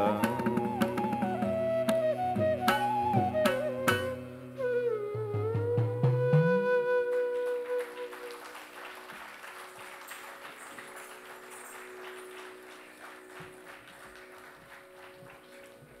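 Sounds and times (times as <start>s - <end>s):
audience applauding: 6.9s - 16.0s.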